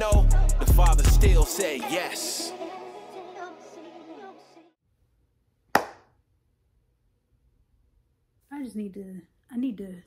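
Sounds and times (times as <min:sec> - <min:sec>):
sharp hand clap: 0:05.8 - 0:06.1.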